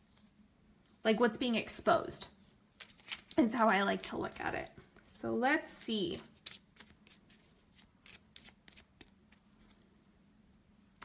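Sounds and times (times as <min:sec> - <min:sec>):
cards shuffling: 0:02.8 - 0:04.4, 0:06.3 - 0:09.9.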